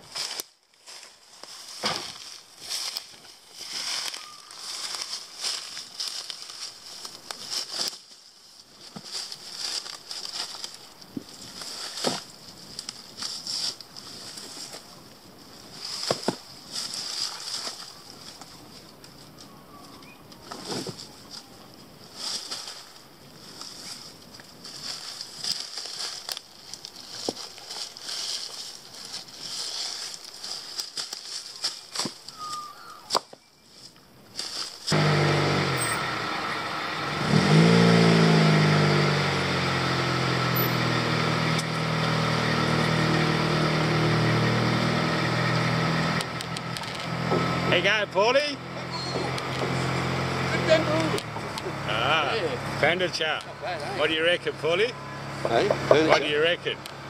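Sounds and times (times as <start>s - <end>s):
bamboo snapping and rustling: 0.0s - 15.0s, 15.8s - 35.2s, 44.6s - 47.6s, 49.3s - 50.4s, 51.0s - 51.7s
car engine revving: 34.9s - 57.0s.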